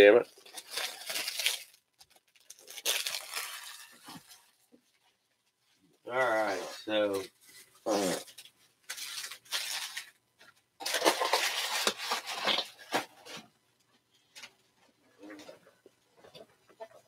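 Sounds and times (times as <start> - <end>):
trading cards and packaging rustling: 0.2 - 13.5.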